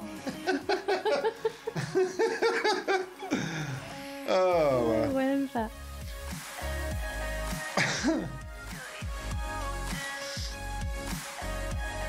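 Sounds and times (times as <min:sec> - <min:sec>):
background music with bass: 0:00.0 - 0:12.0
person coughing: 0:07.8 - 0:08.4.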